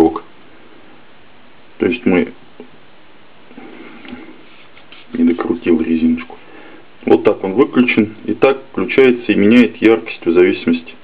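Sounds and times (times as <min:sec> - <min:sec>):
faint rubbing: 0:03.5 - 0:06.5.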